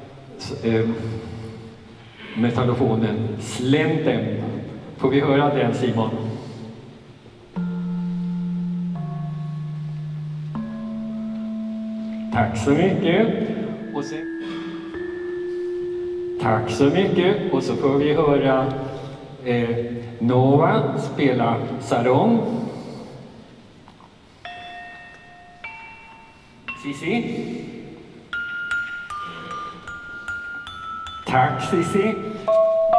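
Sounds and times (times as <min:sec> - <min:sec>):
metallophone notes ringing: 0:07.5 - 0:20.2, 0:24.4 - 0:32.9.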